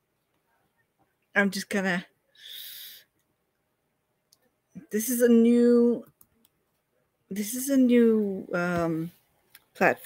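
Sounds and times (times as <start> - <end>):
person's breathy exhale: 2.4 - 3.1.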